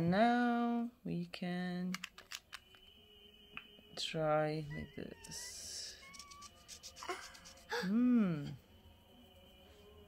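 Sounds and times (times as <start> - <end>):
small plastic parts clicking: 1.9 - 2.8.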